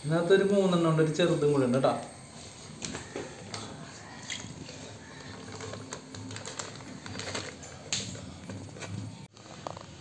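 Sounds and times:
wet plastic bag crinkling: 3.5 - 8.4.

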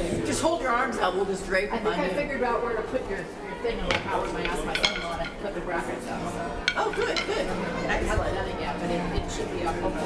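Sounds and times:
indistinct chatter: 0.0 - 10.0
sharp clinks and knocks: 6.7 - 7.5.

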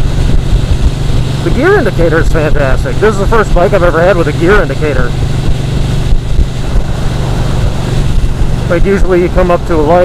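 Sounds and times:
wind noise on microphone: 0.0 - 3.0, 4.5 - 10.0
motorcycle engine running: 0.0 - 10.0.

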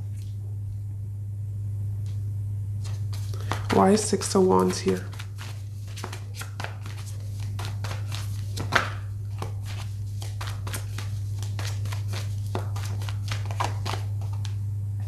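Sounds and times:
low electrical hum: 0.0 - 15.0
cards shuffling: 2.8 - 14.6.

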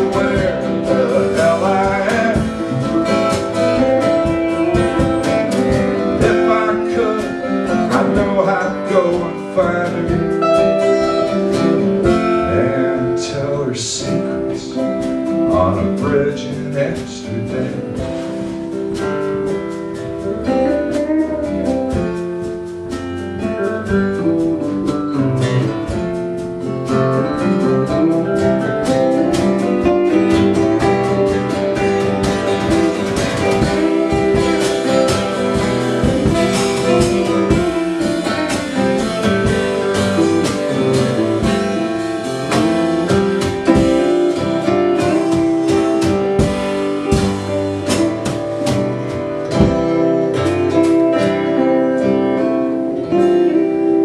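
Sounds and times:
drums and cymbals: 0.0 - 52.1
electric lead guitar: 0.0 - 54.0
strummed acoustic guitar: 0.0 - 54.0.

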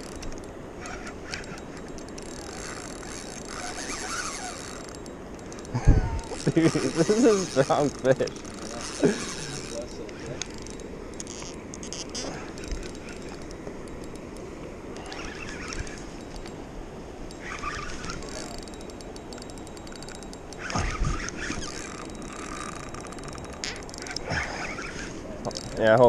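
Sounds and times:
fishing reel ticking: 0.0 - 26.0
river water rushing: 0.0 - 26.0.

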